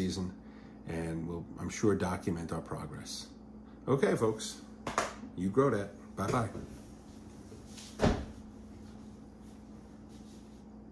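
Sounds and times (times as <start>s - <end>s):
faint steady hum: 0.0s - 10.9s
dull thump: 8.0s - 8.4s.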